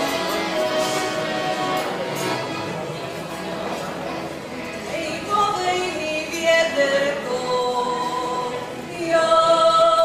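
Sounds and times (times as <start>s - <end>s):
group singing folk song: 5.0s - 10.0s.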